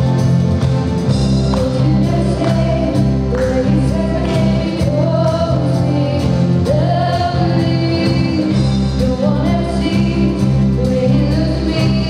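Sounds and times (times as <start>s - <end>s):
electric and acoustic guitars: 0.0s - 12.0s
keyboard: 0.0s - 12.0s
steady drum beat: 0.0s - 12.0s
woman singing into a microphone: 1.5s - 12.0s.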